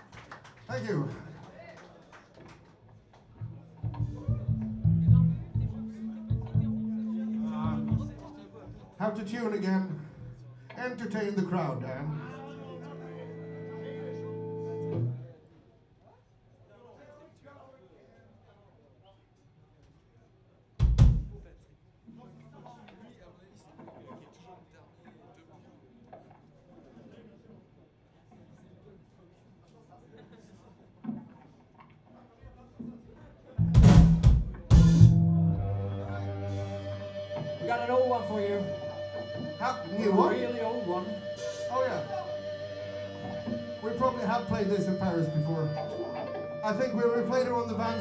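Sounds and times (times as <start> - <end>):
guitar amplifier steady tone: 3.4 - 9.1, 34.7 - 48.0
low voices: 3.4 - 9.3, 34.5 - 48.0
faint guitar sounds: 3.4 - 15.4, 33.6 - 48.0
drum kit hits: 3.8 - 6.9, 33.6 - 35.7.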